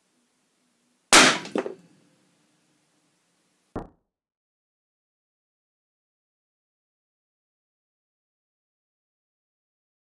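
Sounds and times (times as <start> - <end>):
sharp crack: 1.1 - 1.8.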